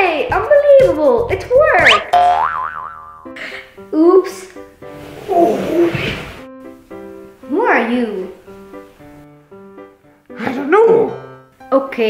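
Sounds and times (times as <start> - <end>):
cartoon boing with wobbling pitch: 1.8 - 3.4.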